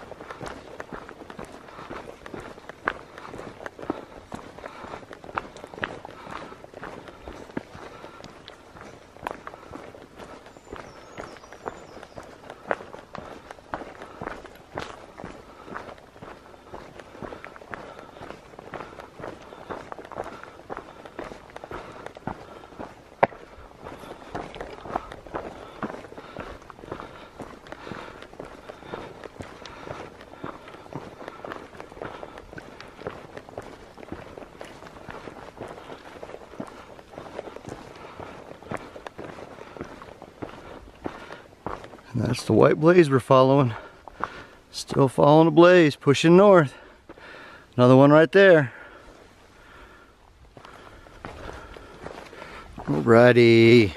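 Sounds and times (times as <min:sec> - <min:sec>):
footsteps crunching on leafy dirt: 0:00.0 - 0:53.9.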